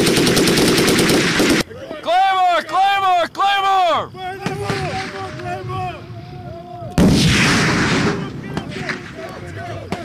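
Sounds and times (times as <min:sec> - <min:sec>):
explosion with rumble: 0:07.0 - 0:09.2.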